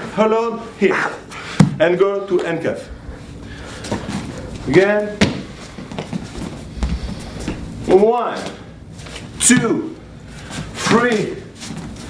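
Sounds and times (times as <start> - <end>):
footsteps on floor: 5.2 - 7.8
low thump: 6.8 - 7.7.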